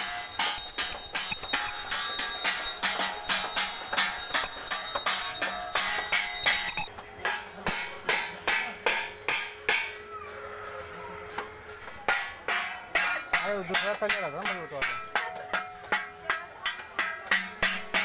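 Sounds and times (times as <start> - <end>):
metal plates beaten ringing: 0.0 - 9.6.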